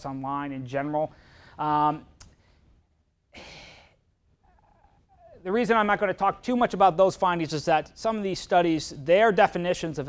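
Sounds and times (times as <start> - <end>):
man breathing: 1.1 - 1.6, 2.3 - 5.4.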